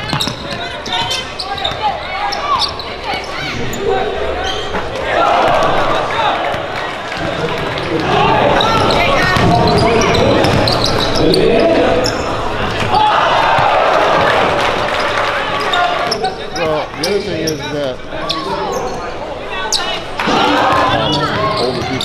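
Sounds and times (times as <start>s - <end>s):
basketball bouncing on wooden floor: 0.0s - 1.1s, 8.6s - 10.8s
crowd voices echoing: 0.0s - 22.0s.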